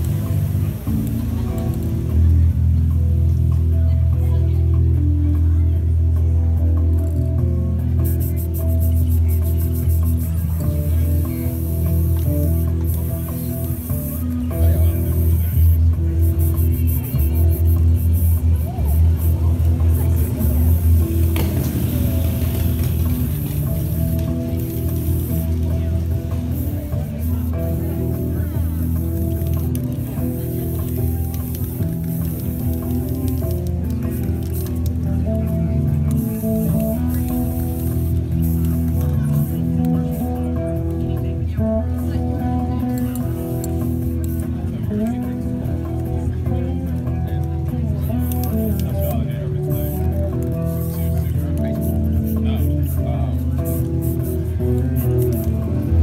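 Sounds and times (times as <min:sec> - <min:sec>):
spray paint can hissing: 0:00.0 - 0:02.4, 0:06.9 - 0:41.1, 0:42.0 - 0:56.0
looped bass line: 0:00.0 - 0:56.0.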